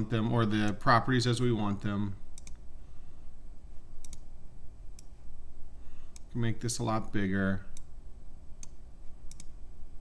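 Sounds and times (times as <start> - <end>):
computer mouse clicks: 2.3 - 2.6, 4.0 - 4.3, 6.1 - 6.3, 8.6 - 9.6.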